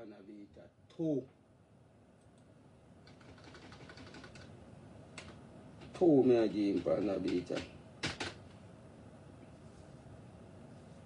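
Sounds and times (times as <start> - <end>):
typing on keyboard: 3.0 - 4.5, 6.7 - 8.4.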